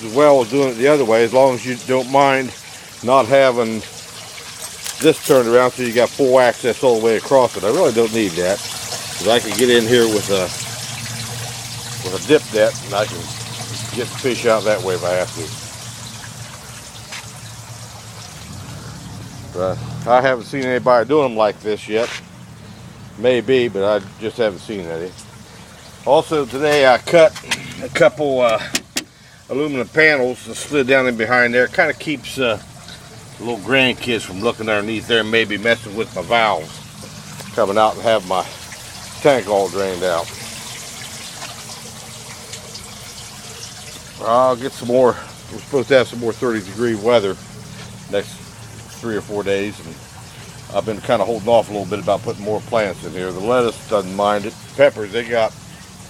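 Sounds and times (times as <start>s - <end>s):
water trickling into tank: 0.0s - 56.0s.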